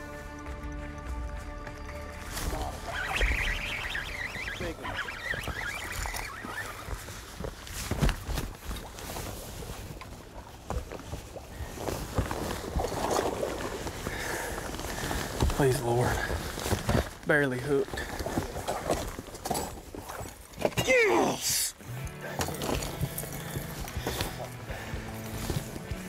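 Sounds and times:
high chirping: 0:02.5 - 0:06.9.

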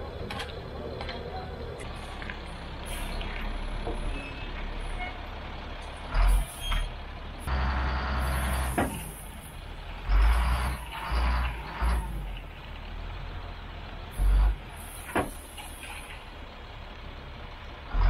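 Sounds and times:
dump truck engine running: 0:00.0 - 0:18.0.

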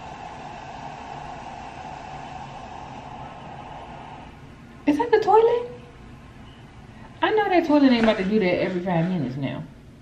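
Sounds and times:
steady rushing noise: 0:00.0 - 0:04.8
constant mid-pitched hum: 0:00.0 - 0:10.0.

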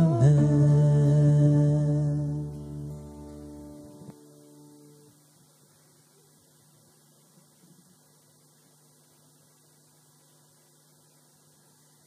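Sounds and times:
guitar chord ringing out: 0:00.0 - 0:05.2
faint steady hum: 0:00.0 - 0:12.0.

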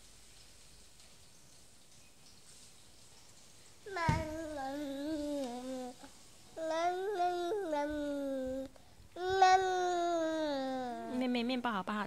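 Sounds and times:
toddler's drawn-out vowel: 0:03.9 - 0:11.2.

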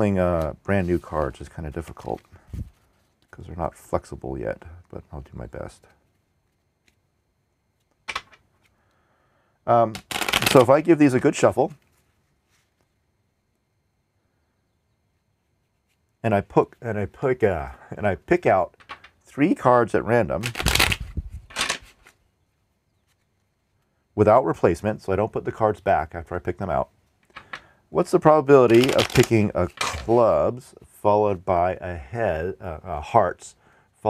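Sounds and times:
playing cards rustling: 0:00.0 - 0:03.5, 0:05.7 - 0:07.1, 0:07.7 - 0:08.8, 0:09.8 - 0:13.0, 0:20.2 - 0:22.3, 0:27.1 - 0:31.4
playing cards clicking: 0:09.9 - 0:10.7, 0:20.4 - 0:22.2, 0:27.3 - 0:27.7, 0:28.6 - 0:30.3.

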